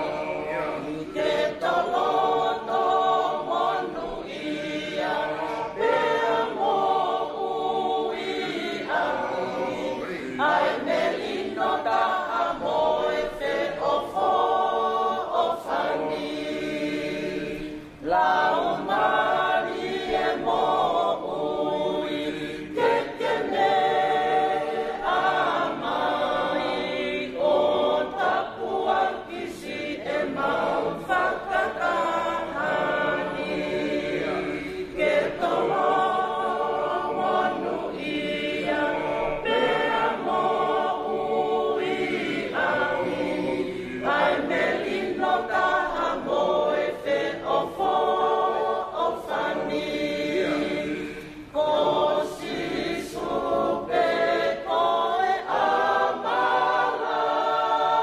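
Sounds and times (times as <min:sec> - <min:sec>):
group singing unaccompanied: 0:00.0 - 0:58.0.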